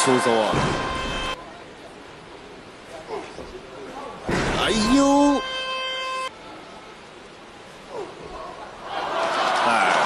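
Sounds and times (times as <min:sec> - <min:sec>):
horn-like tone: 0:00.0 - 0:01.4, 0:04.9 - 0:06.4
faint hall background noise: 0:00.0 - 0:10.0.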